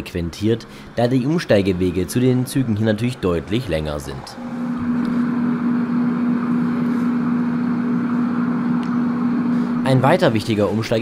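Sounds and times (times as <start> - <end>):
street noise: 0.0 - 9.8
tram humming: 0.0 - 11.0.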